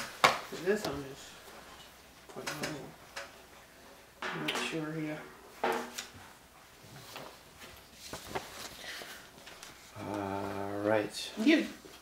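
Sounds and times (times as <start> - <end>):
paper sheets rustling: 6.8 - 10.6.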